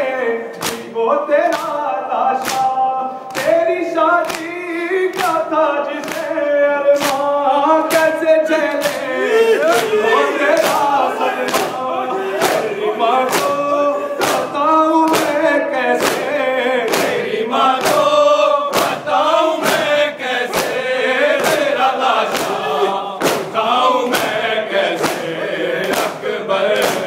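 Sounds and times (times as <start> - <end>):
men chanting in unison: 0.0 - 27.0
hands slapping chests: 0.5 - 0.9, 2.4 - 3.6, 4.2 - 5.4, 6.0 - 6.4, 7.0 - 7.3, 8.7 - 22.6, 23.2 - 24.4, 25.0 - 27.0.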